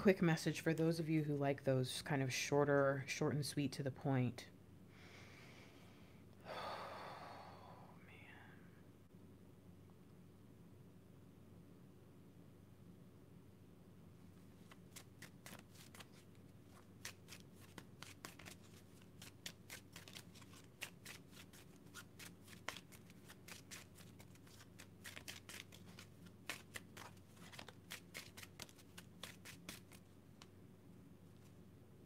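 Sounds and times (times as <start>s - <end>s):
cards being shuffled: 14.5s - 30.5s.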